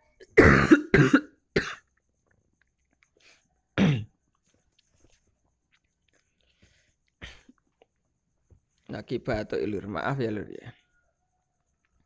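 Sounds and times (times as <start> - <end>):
person coughing: 0.3 - 1.9, 3.8 - 4.1.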